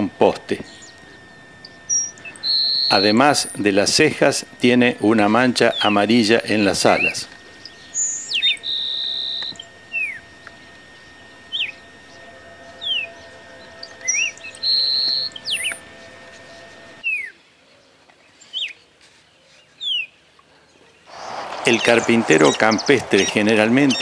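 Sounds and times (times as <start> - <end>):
sparrow song with buzzy trill: 0.0 - 20.3, 21.0 - 24.0.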